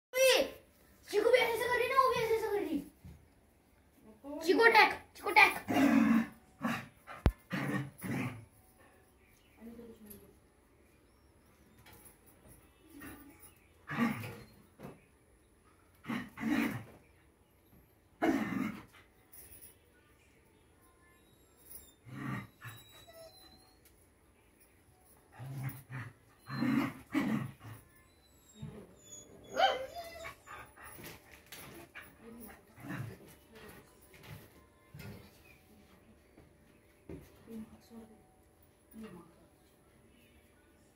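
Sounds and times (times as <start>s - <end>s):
puppy yelping: 28.4s - 30.5s.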